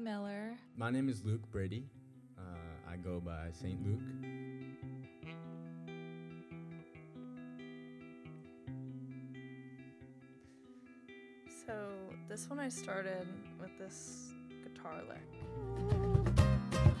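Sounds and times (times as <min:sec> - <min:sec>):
acoustic guitar plucked notes: 0:01.1 - 0:17.0.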